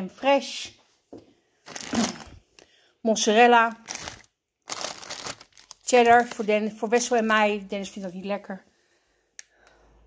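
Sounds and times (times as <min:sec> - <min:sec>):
plastic packaging crinkling: 0:01.6 - 0:02.4, 0:03.6 - 0:08.1.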